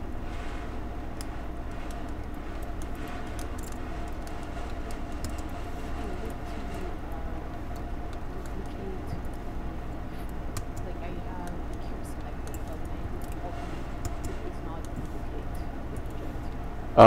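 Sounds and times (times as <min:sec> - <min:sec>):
low computer hum: 0:00.0 - 0:17.0.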